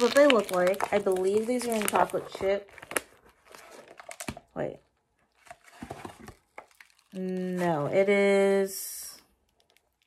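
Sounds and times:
plastic bag crinkling: 0.0s - 4.5s, 5.3s - 8.0s.

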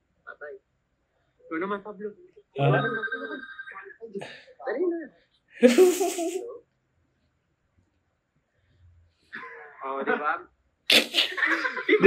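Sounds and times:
phone ringing electronic tone: 2.6s - 3.8s
voices talking: 2.6s - 4.3s.

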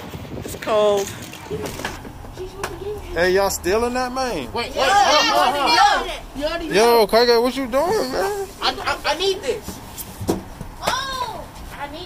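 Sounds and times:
faint voices: 1.5s - 12.0s.

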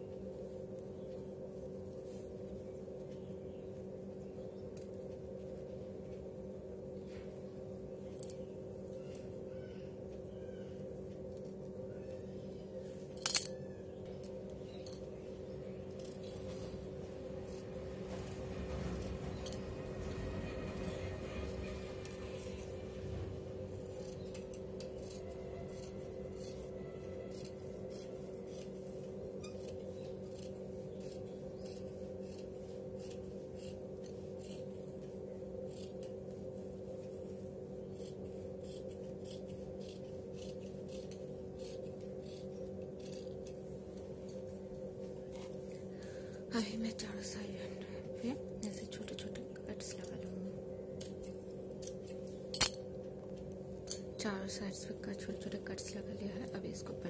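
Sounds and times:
steady low hum: 0.0s - 57.0s
scissors snipping fabric: 23.8s - 34.8s, 35.6s - 36.2s, 37.9s - 44.4s.

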